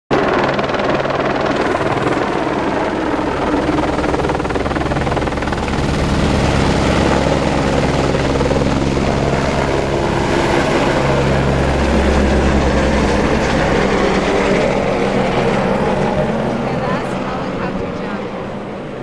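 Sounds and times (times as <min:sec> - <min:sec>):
helicopter rotor beating: 0:00.1 - 0:19.0
low turbine drone: 0:00.1 - 0:19.0.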